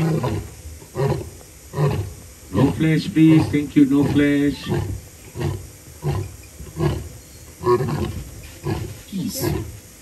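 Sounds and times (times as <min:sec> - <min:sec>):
lion roaring: 0:00.0 - 0:09.8.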